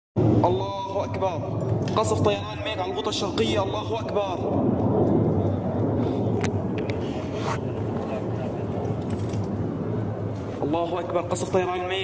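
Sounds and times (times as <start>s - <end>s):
low outdoor rumble: 0.2s - 12.0s.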